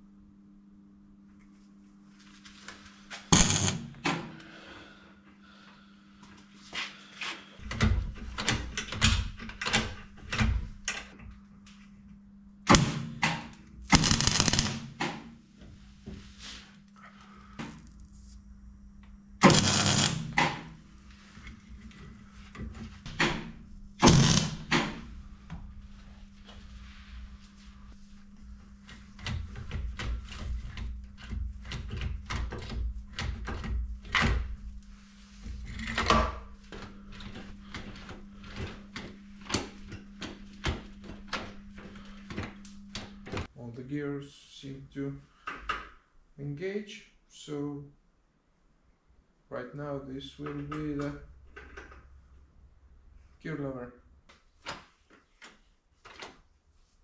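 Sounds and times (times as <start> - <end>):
steady low hum: 0.0 - 48.1.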